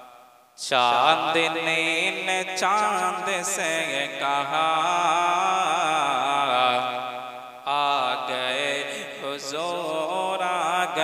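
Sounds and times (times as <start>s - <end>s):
man singing into a microphone: 0.6s - 11.0s.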